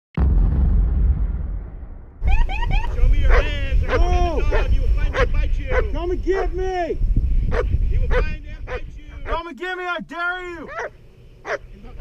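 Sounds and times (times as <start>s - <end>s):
sudden loud rush of noise: 0.2s - 5.0s
low rumble: 0.2s - 9.3s
dog barking excitedly: 3.3s - 6.6s, 7.5s - 9.4s, 10.7s - 11.7s.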